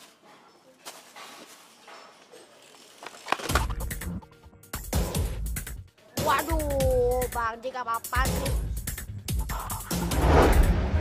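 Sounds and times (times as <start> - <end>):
background music: 3.5 - 11.0.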